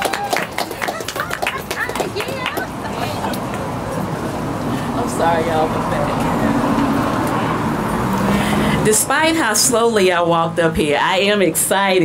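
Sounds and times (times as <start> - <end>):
faint voices: 0.0 - 9.5
road traffic noise: 0.0 - 12.0.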